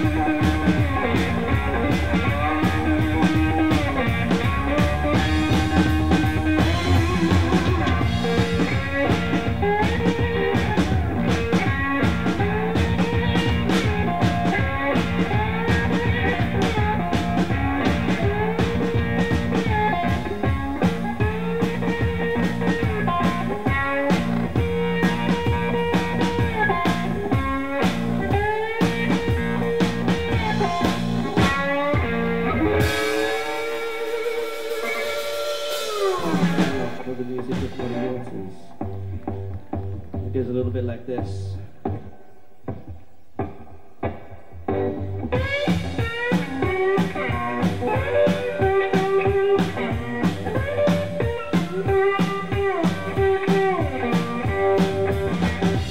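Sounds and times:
electric slide guitar riff: 0.0 - 40.5, 43.4 - 55.9
drum kit beat: 0.0 - 55.9.

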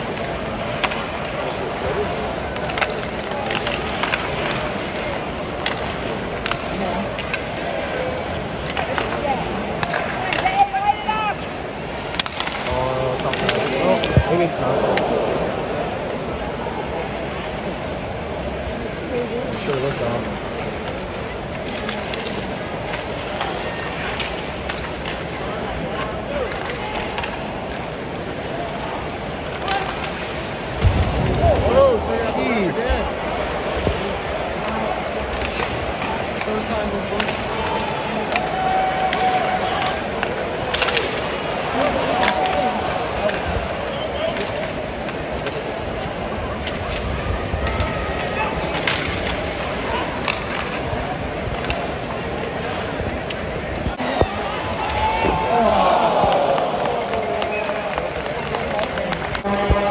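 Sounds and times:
sticks and puck clacking on ice: 0.0 - 17.8, 18.4 - 31.0, 31.6 - 59.9
skates scraping ice: 0.0 - 31.0, 31.6 - 59.9
arena crowd murmur: 0.0 - 59.9.

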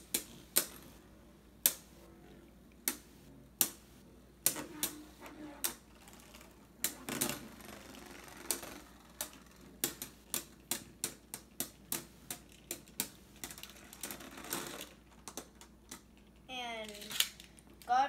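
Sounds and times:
spinning tops clacking: 5.7 - 15.6.

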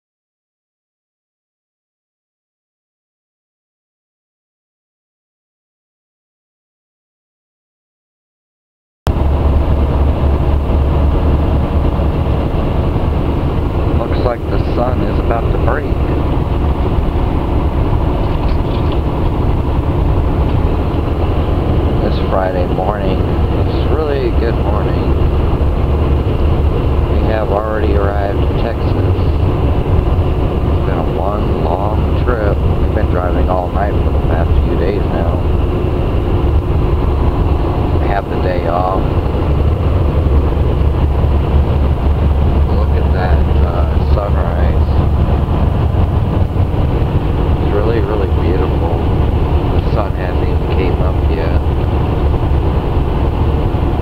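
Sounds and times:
truck engine and road noise drone: 9.1 - 54.0
indistinct voices: 21.9 - 25.2, 30.7 - 35.5, 37.9 - 39.3, 47.6 - 49.1, 49.7 - 51.6.

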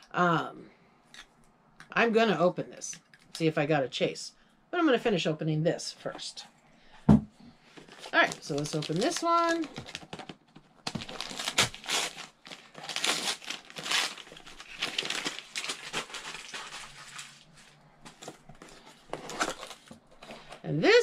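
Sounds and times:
wrapping paper crinkling and tearing: 7.8 - 19.9.

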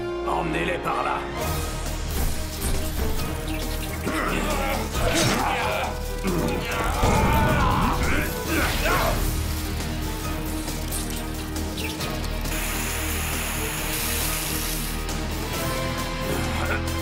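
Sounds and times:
low background score: 0.0 - 17.0
mechanical whirring and clicking: 2.1 - 8.5, 9.2 - 15.1
hiss: 12.5 - 15.1.

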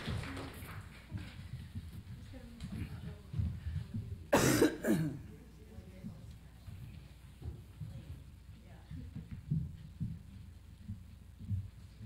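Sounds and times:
shuffling: 0.0 - 4.3, 5.2 - 12.0
person coughing: 4.3 - 5.3.

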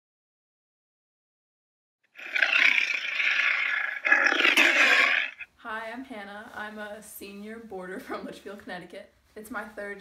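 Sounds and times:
big cat roaring: 2.2 - 5.4.

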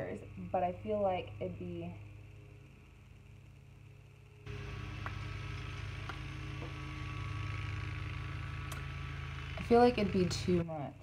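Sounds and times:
low mechanical hum with hiss: 0.0 - 11.0.

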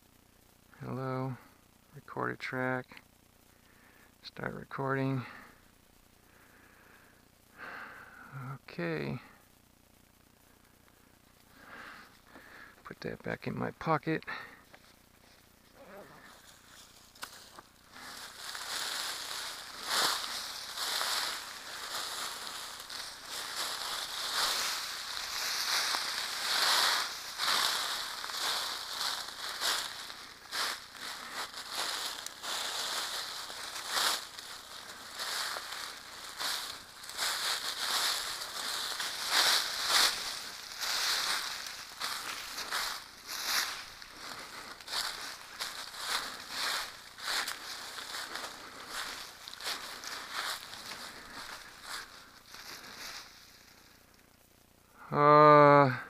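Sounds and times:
twigs crackling: 14.6 - 54.4
plants rustling: 14.7 - 54.2
footsteps crunching through dry leaves: 14.8 - 54.1.

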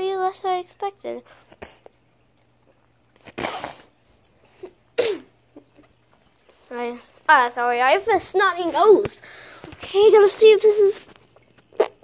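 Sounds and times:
boy sneezing: 3.4 - 3.9, 5.0 - 5.3.

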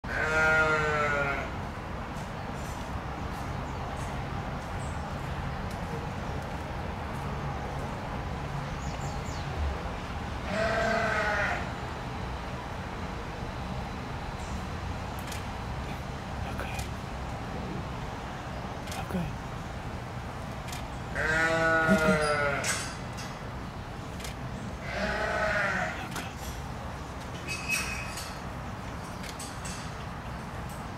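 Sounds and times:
sheep bleating: 0.1 - 1.5, 10.4 - 11.7, 21.1 - 22.8, 24.8 - 26.1
low background hum: 0.1 - 30.9
drawn-out animal call: 21.1 - 23.0, 24.8 - 26.4.

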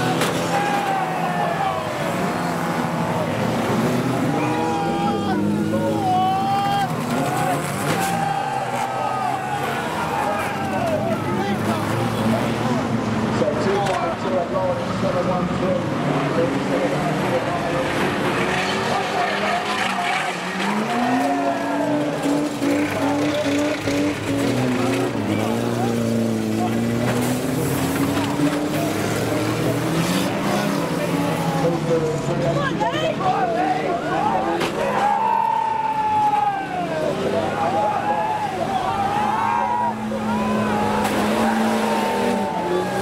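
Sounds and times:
racing car engines revving: 0.0 - 43.0.

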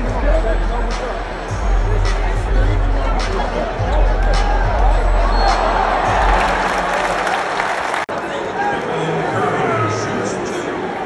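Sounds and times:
crowd applauding: 4.1 - 8.6.

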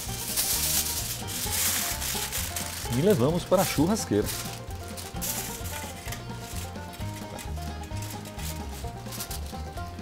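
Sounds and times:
aluminium foil crinkling: 0.0 - 10.0
background music: 0.0 - 10.0.

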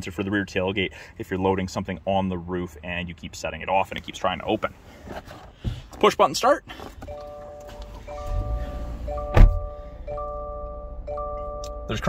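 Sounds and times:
car engine starting and idling: 3.7 - 12.0
dashboard warning chime: 7.0 - 12.0
sharp thump: 9.3 - 9.6.

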